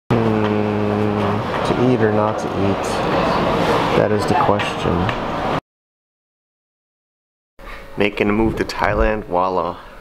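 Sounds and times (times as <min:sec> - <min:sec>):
man speaking drawn-out words: 0:00.1 - 0:03.0.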